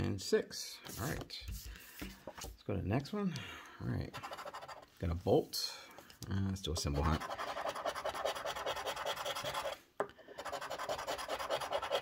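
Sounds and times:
coin scratching lottery ticket: 4.1s - 4.9s, 7.0s - 9.8s, 10.4s - 12.0s.

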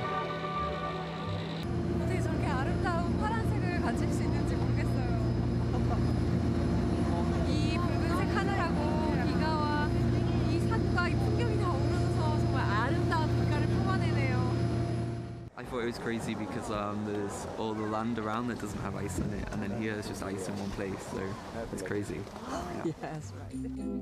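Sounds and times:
boat engine droning: 0.0s - 23.5s
woman talking excitedly: 7.5s - 14.5s, 22.4s - 23.3s.

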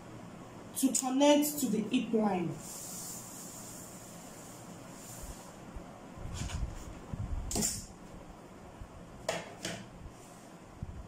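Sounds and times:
faint steady hiss: 0.0s - 6.2s.

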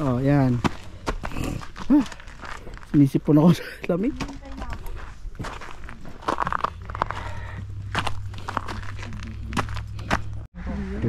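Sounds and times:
footsteps on snow: 0.0s - 11.0s.

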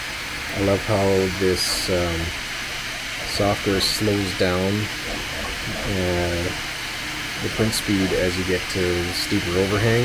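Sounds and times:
three d printer cooling fan hiss: 0.0s - 10.0s.

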